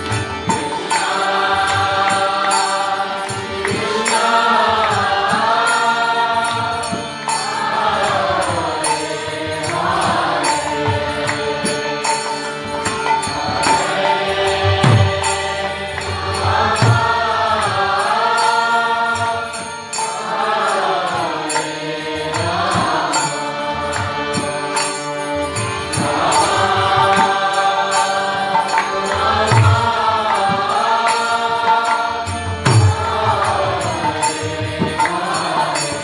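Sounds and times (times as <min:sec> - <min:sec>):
harmonium chords: 0:00.0 - 0:36.0.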